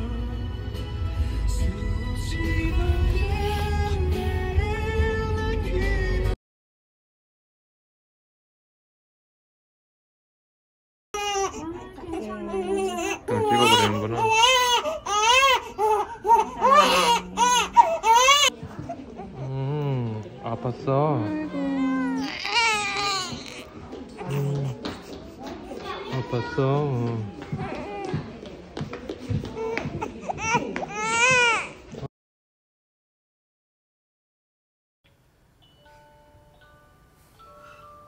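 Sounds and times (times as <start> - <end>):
baby crying: 11.2 - 18.5, 21.4 - 25.1.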